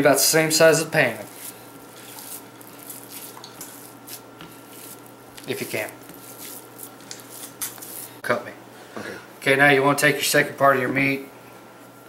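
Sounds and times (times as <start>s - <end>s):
hands pressing raw ground beef: 1.0s - 8.1s.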